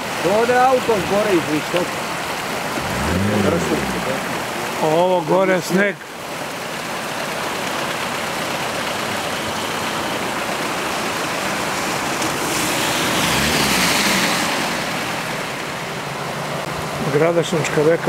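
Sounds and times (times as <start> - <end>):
river rushing: 0.0 - 18.0.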